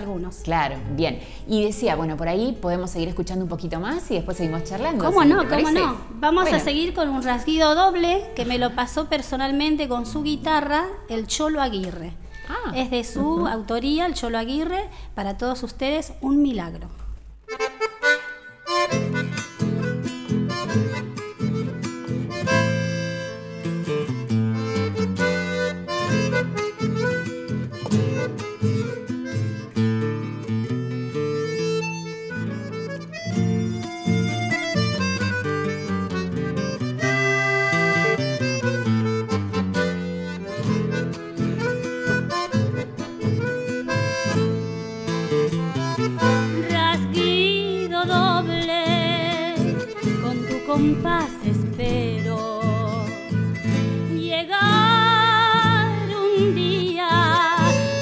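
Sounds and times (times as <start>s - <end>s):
accordion melody: 0.0s - 11.6s, 12.2s - 14.3s, 17.4s - 58.0s
acoustic guitar strumming: 3.8s - 10.7s, 17.4s - 58.0s.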